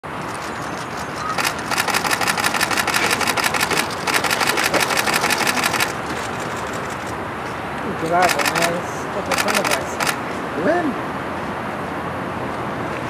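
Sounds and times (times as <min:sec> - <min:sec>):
traffic hum: 0:00.0 - 0:13.0
camera shutters clicking: 0:00.2 - 0:07.2, 0:08.0 - 0:10.2.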